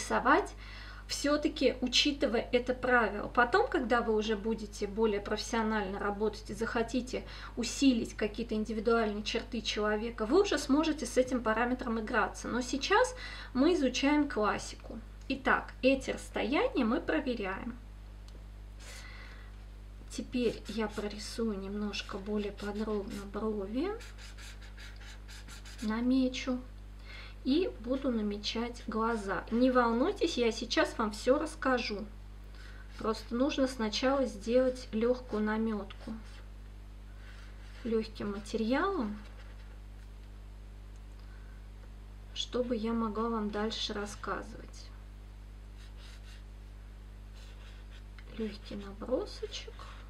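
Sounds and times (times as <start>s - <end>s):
low electrical hum: 0.0s - 50.0s
marker scratching on paper: 20.4s - 26.0s, 37.3s - 38.5s, 45.8s - 46.4s, 47.4s - 49.6s.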